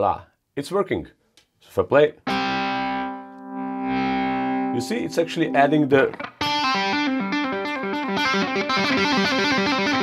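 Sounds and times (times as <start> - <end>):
distorted electric guitar chord: 2.3 - 10.0.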